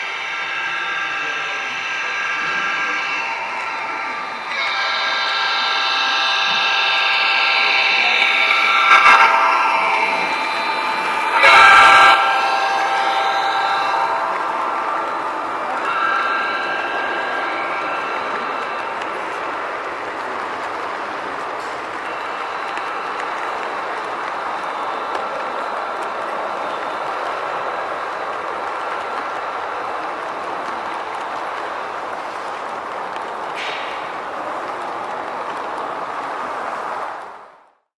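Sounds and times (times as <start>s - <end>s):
model train running: 0.0s - 37.7s
model train horn: 2.5s - 19.0s.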